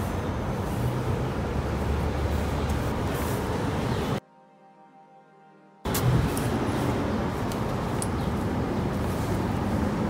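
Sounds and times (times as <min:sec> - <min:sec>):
low street rumble: 0:00.0 - 0:04.2, 0:05.8 - 0:10.0.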